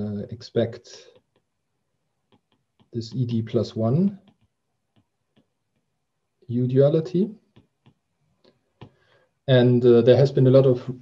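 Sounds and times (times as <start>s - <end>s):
man speaking: 0.0s - 1.1s, 2.9s - 4.3s, 6.5s - 7.4s, 9.5s - 11.0s
stylus tapping tablet screen: 1.0s - 6.5s, 7.1s - 9.2s.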